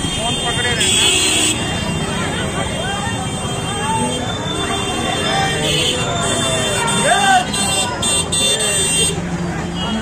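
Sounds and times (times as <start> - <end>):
crowd voices talking: 0.0 - 10.0.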